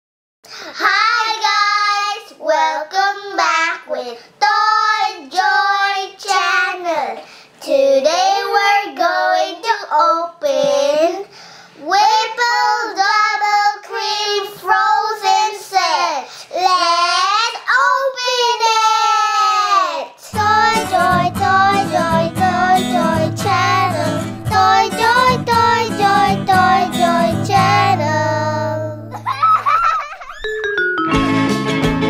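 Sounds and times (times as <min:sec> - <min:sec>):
girls singing unaccompanied: 0:00.8 - 0:29.0.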